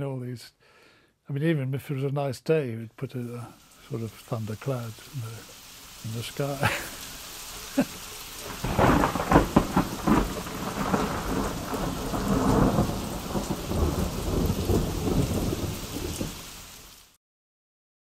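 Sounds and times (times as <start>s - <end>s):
steady rain: 3.0s - 17.2s
thunder crackling and rumbling: 8.4s - 16.8s.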